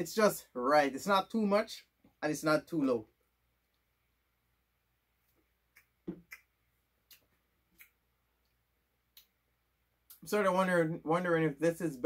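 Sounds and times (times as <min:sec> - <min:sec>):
mouth clicks and lip smacks: 0:05.2 - 0:09.4.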